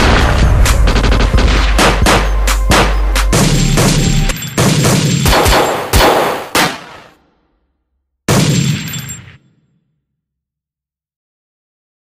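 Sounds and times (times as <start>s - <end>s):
gunshots with metallic ringing: 0.0s - 7.2s, 8.3s - 9.8s.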